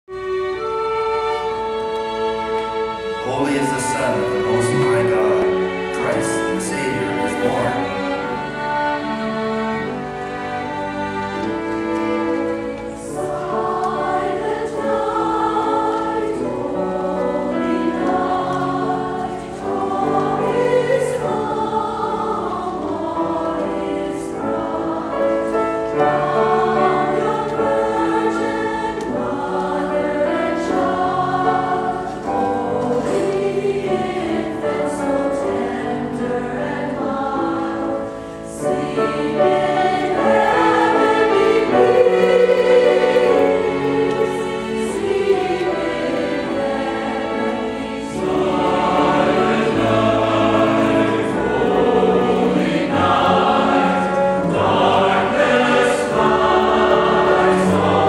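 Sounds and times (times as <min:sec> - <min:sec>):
piano: 0:00.0 - 0:58.0
strings: 0:00.1 - 0:58.0
mixed choir singing: 0:00.2 - 0:58.0.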